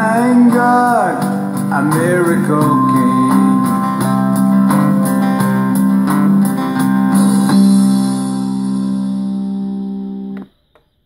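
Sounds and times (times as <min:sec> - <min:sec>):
guitar chord ringing: 0:00.0 - 0:10.6.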